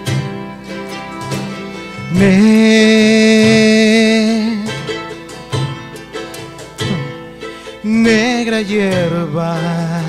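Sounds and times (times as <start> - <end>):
low bass notes: 0.0 - 10.0
strummed guitar chords: 0.0 - 10.0.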